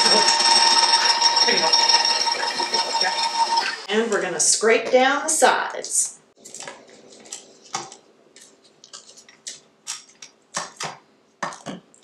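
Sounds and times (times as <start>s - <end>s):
spatula scraping metal bowl: 0.0s - 3.9s.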